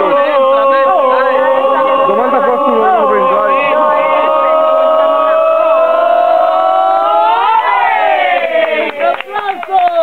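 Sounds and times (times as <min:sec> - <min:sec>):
voices holding a note: 0:00.0 - 0:10.0.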